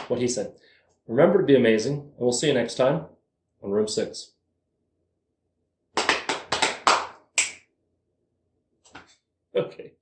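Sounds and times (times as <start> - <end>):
sharp hand claps: 5.9 - 7.7.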